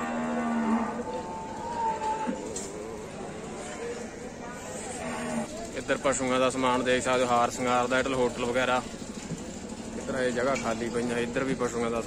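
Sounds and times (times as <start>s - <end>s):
cattle mooing: 0.0s - 2.5s, 4.6s - 5.5s.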